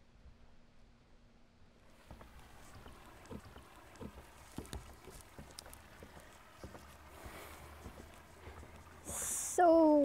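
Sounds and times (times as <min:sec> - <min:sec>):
faint outdoor ambience: 0:00.0 - 0:10.0
faint ticks: 0:02.0 - 0:09.6
soft low thumps: 0:02.0 - 0:10.0.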